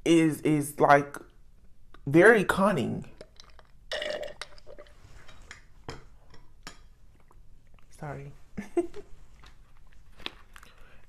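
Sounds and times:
woman burping: 3.9 - 4.4.

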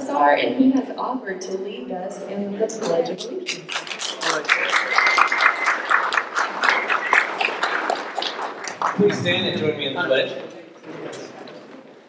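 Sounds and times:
audience applauding: 3.5 - 10.2.

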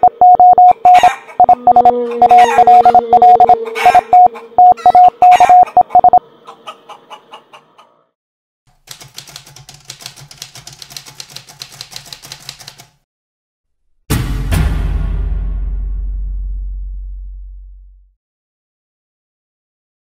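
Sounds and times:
morse code beeps: 0.0 - 6.2
typewriter key clicks: 8.7 - 13.0.

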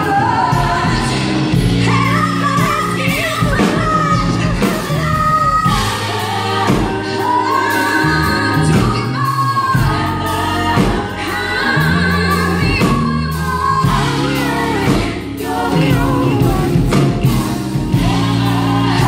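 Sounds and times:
backing vocalists singing: 0.0 - 19.0
live band playing: 0.0 - 19.0
woman singing lead: 0.0 - 19.0.

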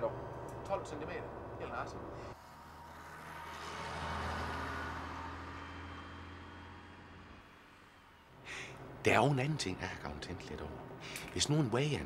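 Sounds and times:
bus passing by: 0.0 - 12.0.

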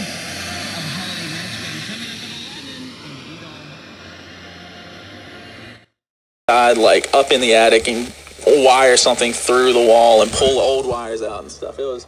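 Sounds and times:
radio static hiss: 0.0 - 5.7, 6.5 - 12.0.

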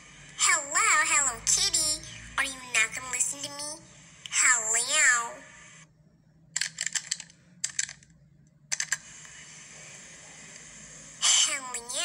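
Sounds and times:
high wavering voice: 0.4 - 5.6.

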